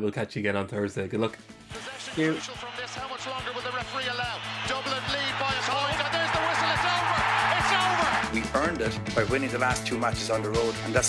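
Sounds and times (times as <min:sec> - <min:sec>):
theme music with steady beat: 0:01.4 - 0:11.0
excited sports commentator: 0:01.7 - 0:11.0
crowd noise: 0:01.8 - 0:08.5.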